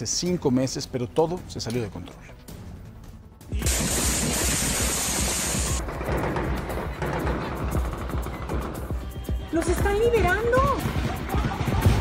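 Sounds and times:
dramatic music: 0:02.4 - 0:12.0
loud hissing rush: 0:03.6 - 0:05.8
gunfire crackling bursts: 0:03.6 - 0:08.6.

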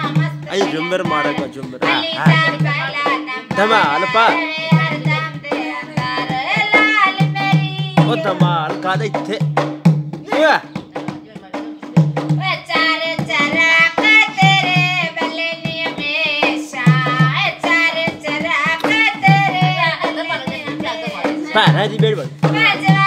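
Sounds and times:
woman singing folk song: 0:00.0 - 0:08.6, 0:11.0 - 0:21.8, 0:22.4 - 0:23.0.

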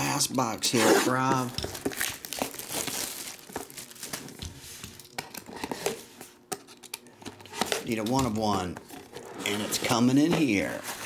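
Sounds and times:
plastic shrink-wrap crinkling: 0:01.4 - 0:04.4.

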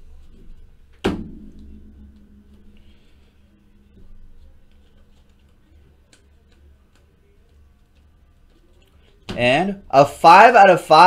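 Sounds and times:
handling trading cards: 0:02.9 - 0:09.4.

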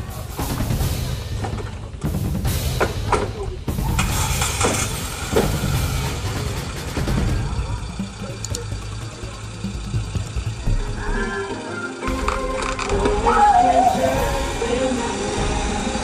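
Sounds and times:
background music: 0:00.0 - 0:16.0
car engine starting and running: 0:03.7 - 0:13.3.

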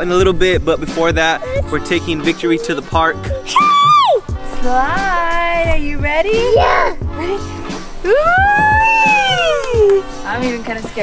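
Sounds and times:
person calling wheee: 0:03.2 - 0:04.2.

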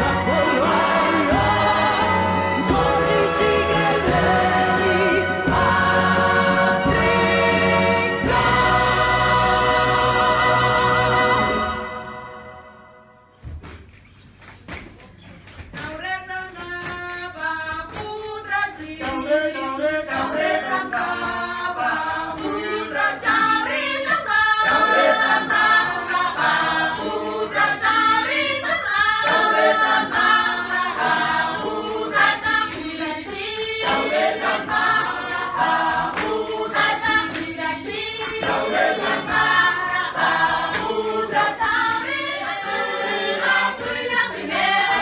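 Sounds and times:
choir singing in harmony: 0:00.0 - 0:13.3, 0:18.2 - 0:45.0.

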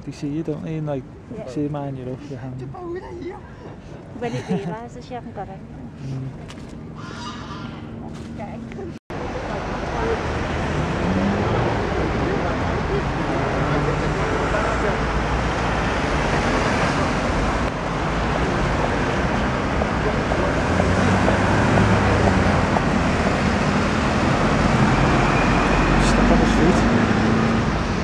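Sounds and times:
heavy vehicle rumble: 0:03.4 - 0:28.0
traffic on wet road: 0:09.1 - 0:28.0.

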